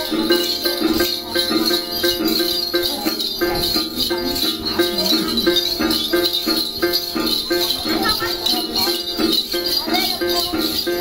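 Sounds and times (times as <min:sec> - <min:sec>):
bell-rattles jingling: 0:00.0 - 0:11.0
plucked lute: 0:00.0 - 0:11.0.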